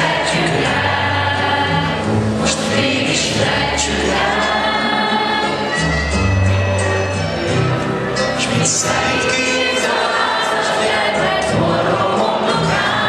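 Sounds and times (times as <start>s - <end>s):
choir singing: 0.0s - 5.9s, 8.3s - 13.0s.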